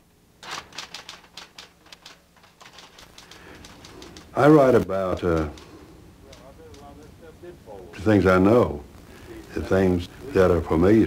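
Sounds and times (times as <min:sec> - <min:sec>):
typewriter keys clicking: 0:00.4 - 0:06.9.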